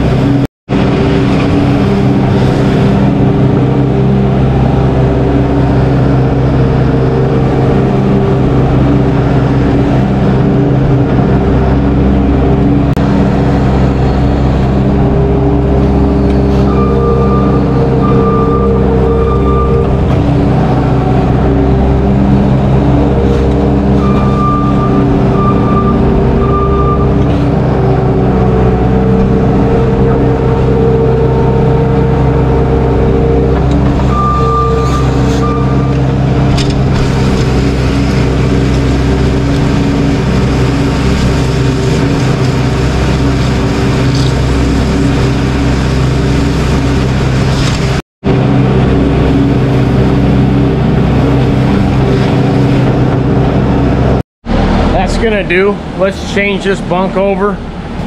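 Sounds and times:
loader engine running: 0.0s - 58.0s
reversing alarm beeping: 13.8s - 22.2s, 22.8s - 36.5s.

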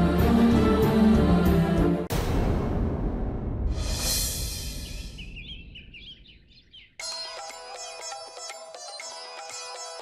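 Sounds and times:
small birds chirping: 4.7s - 10.0s.

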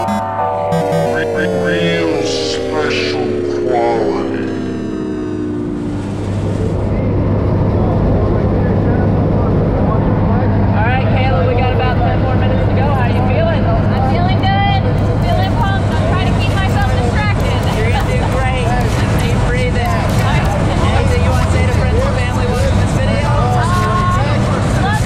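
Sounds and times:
propeller engines droning: 0.0s - 25.0s
people talking: 0.8s - 5.0s, 6.4s - 25.0s.

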